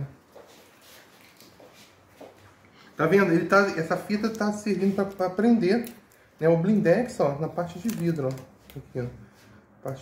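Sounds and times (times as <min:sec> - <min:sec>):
soft tape handling noises: 0:03.8 - 0:09.1.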